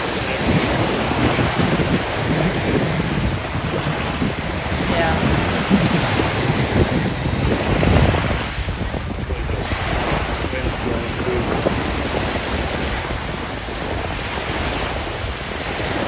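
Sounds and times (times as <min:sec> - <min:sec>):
small waves breaking on beach: 0:00.0 - 0:16.0
wind buffeting microphone: 0:00.0 - 0:16.0.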